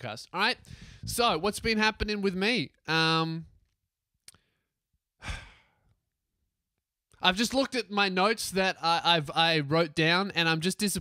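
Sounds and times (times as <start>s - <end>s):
man sighing into microphone: 5.2s - 5.8s.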